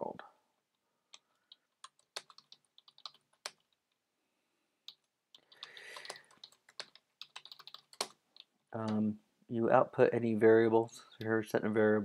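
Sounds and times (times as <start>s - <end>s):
typing on keyboard: 1.2s - 3.9s, 4.9s - 9.0s.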